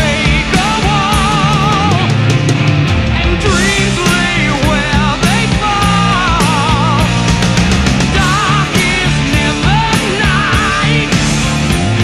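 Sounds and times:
heavy metal band playing: 0.0s - 12.0s
lead guitar with wide vibrato: 0.0s - 12.0s.

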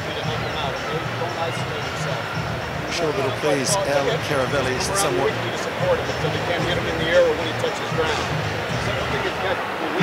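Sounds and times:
stadium crowd noise: 0.0s - 10.0s
man talking: 2.9s - 8.3s.

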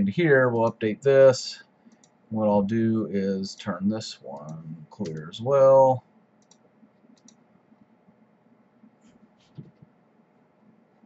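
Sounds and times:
faint computer mouse clicks: 1.9s - 2.2s, 6.4s - 7.4s.

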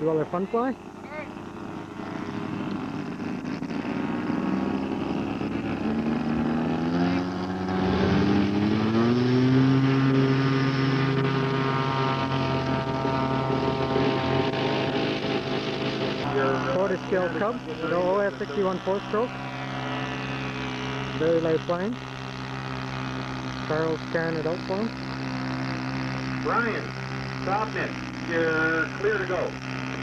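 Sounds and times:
model airplane engine running up: 0.0s - 30.0s.

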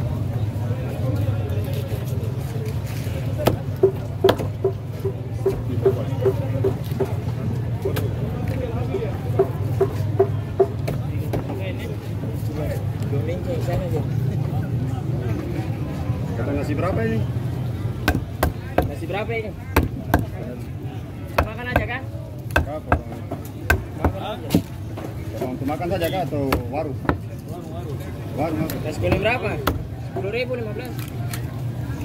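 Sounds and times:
crowd babble: 0.0s - 32.0s.

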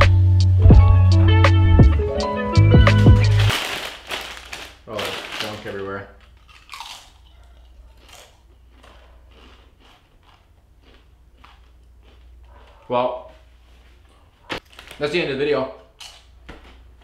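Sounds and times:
background music: 0.0s - 3.5s
person chewing a crunchy snack: 6.2s - 13.5s, 15.8s - 17.0s.

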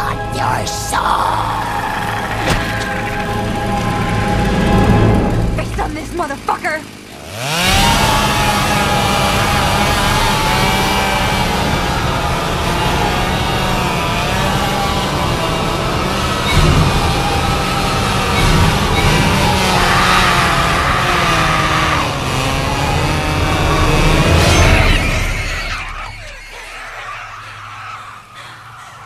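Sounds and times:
wavering high drawn-out tones: 0.0s - 7.1s, 22.9s - 29.0s
chainsaw engine revving and running: 0.0s - 26.0s.

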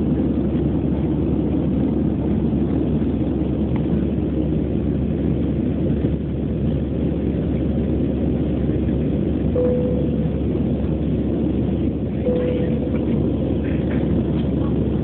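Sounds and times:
jet engine and airflow roar: 0.0s - 15.0s
short faint tones: 9.6s - 10.8s, 12.3s - 13.6s.

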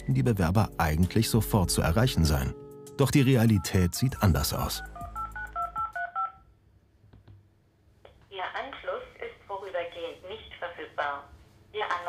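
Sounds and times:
touch-tone keypad beeps: 3.4s - 6.4s.

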